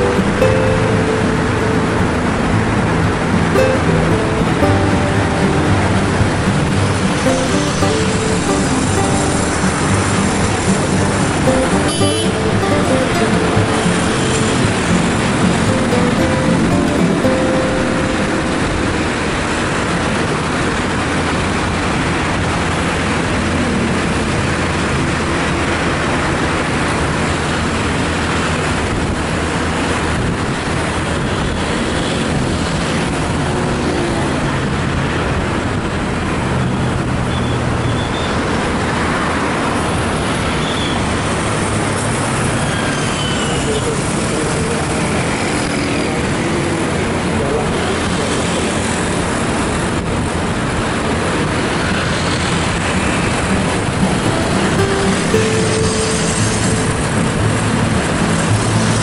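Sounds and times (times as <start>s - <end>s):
music: 0.0s - 20.6s, 52.5s - 59.0s
city road traffic: 0.0s - 59.0s.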